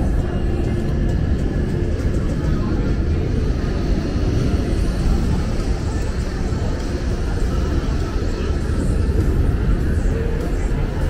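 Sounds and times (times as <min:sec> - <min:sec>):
city background rumble: 0:00.0 - 0:11.0
indistinct voices: 0:00.0 - 0:11.0.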